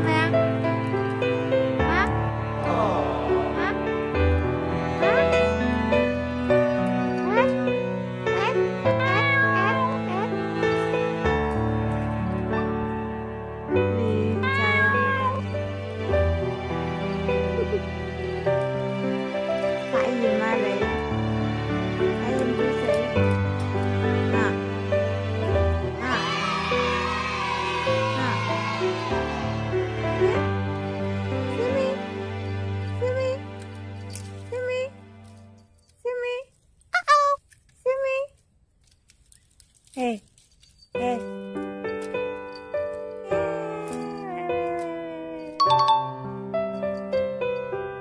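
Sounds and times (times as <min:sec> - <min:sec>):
soft background music: 0:00.0 - 0:36.4, 0:40.9 - 0:48.0
cat meowing: 0:08.4 - 0:10.4, 0:14.3 - 0:15.6.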